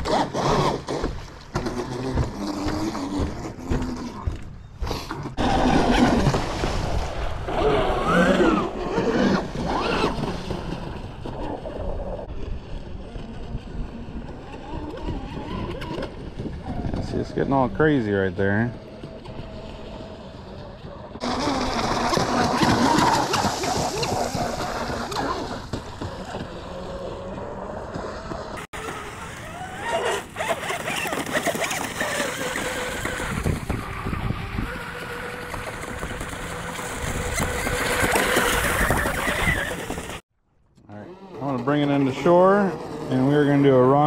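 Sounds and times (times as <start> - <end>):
wind buffeting microphone: 5.4 - 27.5, 30.4 - 40.2
electric motor whine: 18.8 - 40.1.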